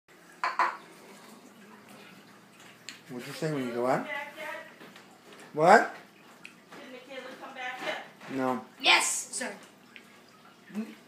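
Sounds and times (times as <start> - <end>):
tableware clinking: 0.4 - 0.8.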